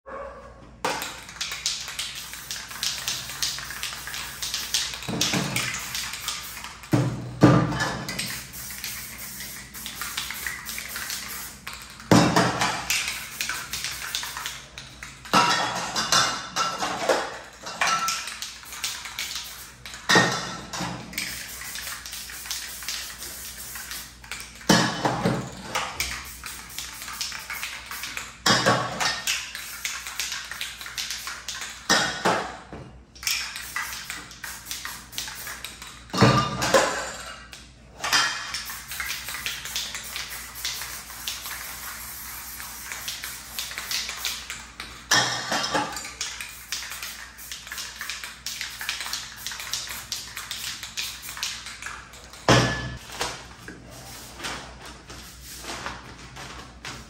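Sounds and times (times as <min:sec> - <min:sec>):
spray can balls rattling: 0:00.8 - 0:32.0, 0:33.2 - 0:37.6, 0:38.3 - 0:52.6
spray paint hissing: 0:01.2 - 0:07.0, 0:08.0 - 0:12.1, 0:12.8 - 0:14.8, 0:18.2 - 0:20.1, 0:21.2 - 0:24.7, 0:26.0 - 0:28.3, 0:29.3 - 0:31.8, 0:33.2 - 0:35.9, 0:38.6 - 0:44.7, 0:46.1 - 0:52.4.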